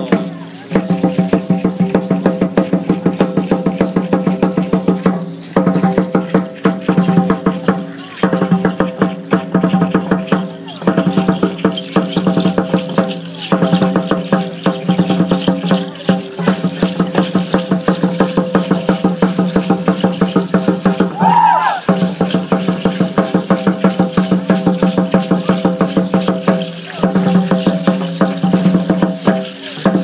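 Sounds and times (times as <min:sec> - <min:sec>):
fast drumbeat: 0:00.0 - 0:30.0.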